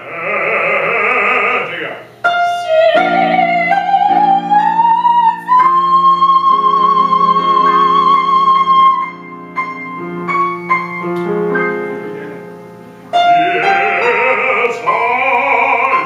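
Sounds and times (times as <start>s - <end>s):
grand piano: 0.0s - 16.0s
woman singing operatically: 2.3s - 9.2s.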